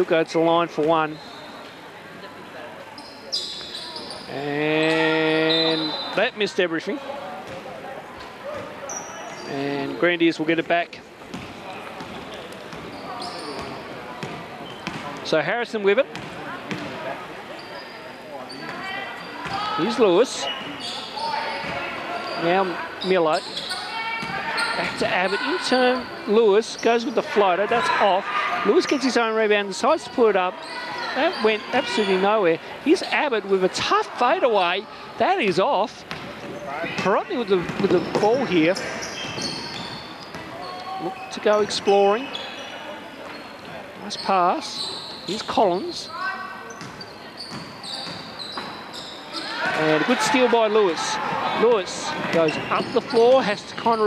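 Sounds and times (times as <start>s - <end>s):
murmur of people: 0.0s - 54.0s
shoe squeak: 1.1s - 1.8s, 3.0s - 6.3s, 8.6s - 10.0s, 12.0s - 15.1s, 17.5s - 28.1s, 30.0s - 32.3s, 36.4s - 54.0s
basketball bouncing on hardwood: 11.3s - 12.1s, 13.6s - 15.0s.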